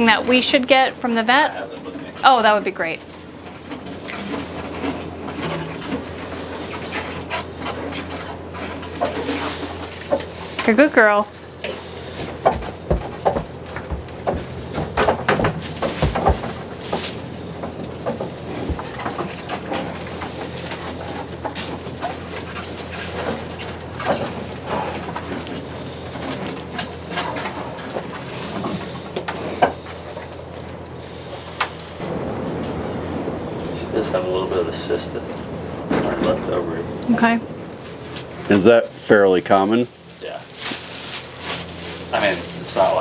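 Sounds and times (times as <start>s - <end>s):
steady low hum: 0.0s - 43.0s
knocks clicks and rustles: 3.1s - 32.8s.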